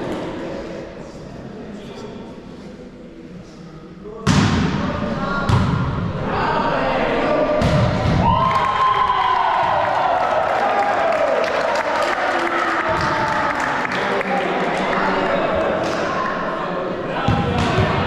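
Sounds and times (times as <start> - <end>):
volleyball hits: 5.5 - 6.1, 7.6 - 8.7
shouting and cheering: 6.3 - 15.7.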